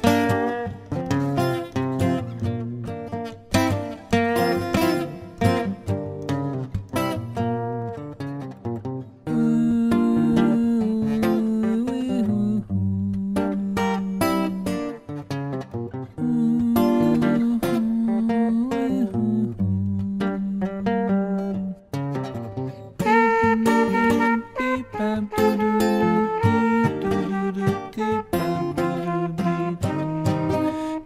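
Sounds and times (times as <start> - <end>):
plucked string melody: 0.0 - 31.0.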